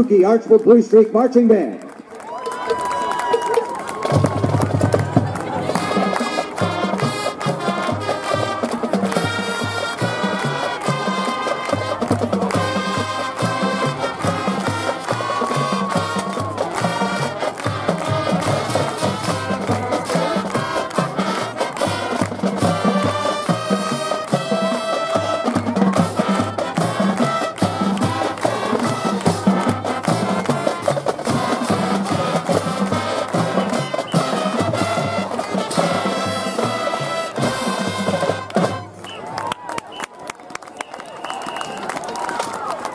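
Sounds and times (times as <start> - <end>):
crowd noise: 0.0 - 42.9
marching band playing: 2.4 - 40.2.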